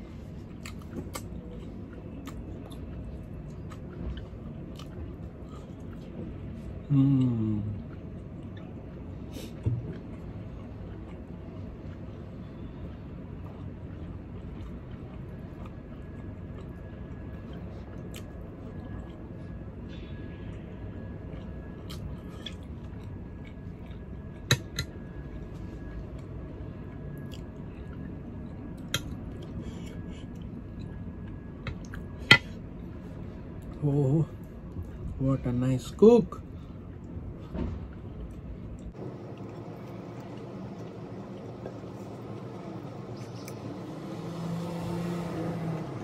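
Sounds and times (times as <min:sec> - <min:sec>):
quiet chewing: 0:00.1 - 0:35.2, 0:36.5 - 0:44.0.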